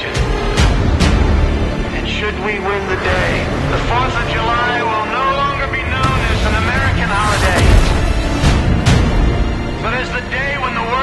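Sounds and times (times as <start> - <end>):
indistinct voices: 1.7 - 8.5.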